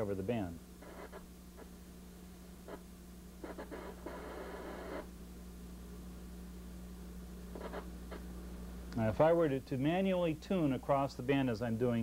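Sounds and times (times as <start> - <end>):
burst of radio static: 0.0 - 1.8, 2.6 - 5.2, 7.5 - 8.3
faint radio signal snatches: 0.8 - 1.8, 2.4 - 5.2, 7.4 - 9.0.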